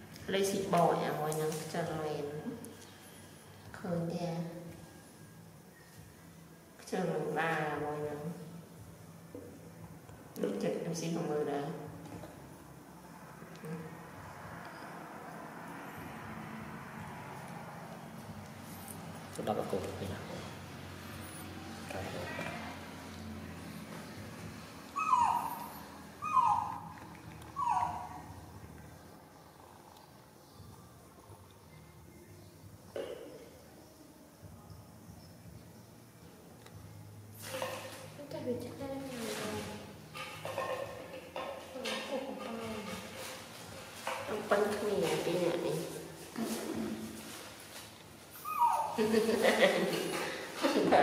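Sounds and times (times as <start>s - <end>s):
baby monkey crying: 24.9s - 27.0s, 27.6s - 28.4s, 48.4s - 49.1s.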